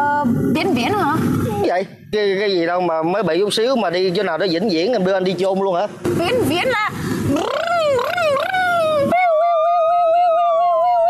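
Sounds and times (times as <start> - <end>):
howl-like wail sliding in pitch: 8.9 - 11.0.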